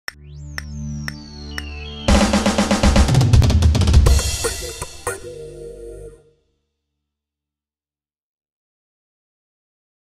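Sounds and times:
fast drum roll: 2.1s - 5.1s
sharp drum hit: 2.1s - 5.3s
held low chord: 4.1s - 6.4s.

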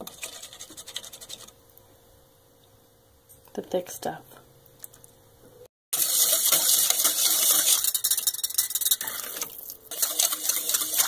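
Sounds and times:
spoon scraping a metal pot: 6.0s - 11.0s.

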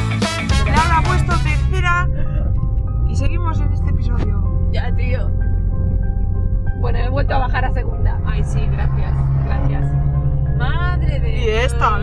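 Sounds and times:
upbeat theme music: 0.0s - 9.1s
car engine and road noise: 0.0s - 12.0s
voice: 0.7s - 2.1s, 3.1s - 5.3s, 6.8s - 9.9s, 10.6s - 12.0s.

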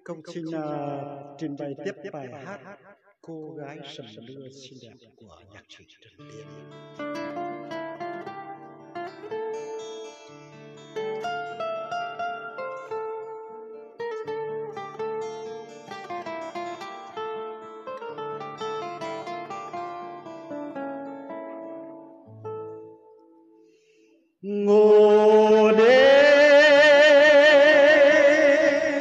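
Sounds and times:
plucked string melody: 6.3s - 23.9s, 24.8s - 29.0s.

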